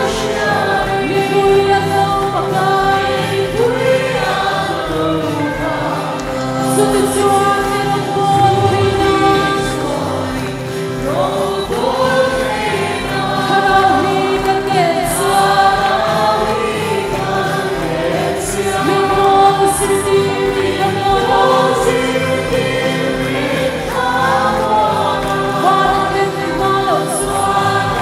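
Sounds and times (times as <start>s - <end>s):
congregation singing worship song: 0.0s - 28.0s
musical accompaniment: 0.0s - 28.0s.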